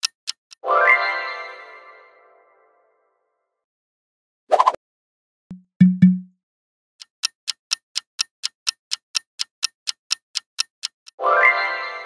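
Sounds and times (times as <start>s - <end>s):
clock ticking: 0.0s - 0.6s, 5.5s - 6.3s, 7.0s - 11.2s.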